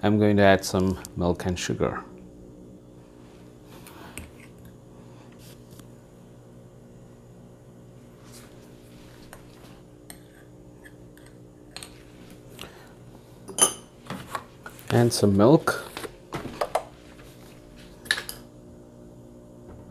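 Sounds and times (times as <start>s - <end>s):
steady low hum: 0.0s - 19.9s.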